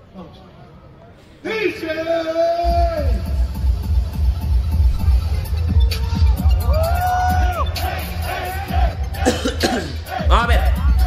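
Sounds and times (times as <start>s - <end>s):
music with heavy bass beat: 2.6s - 11.0s
man coughing: 9.2s - 10.1s.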